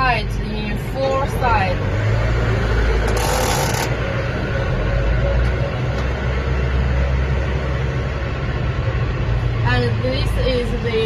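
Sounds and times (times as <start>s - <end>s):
diesel tractor engine idling: 0.0s - 11.0s.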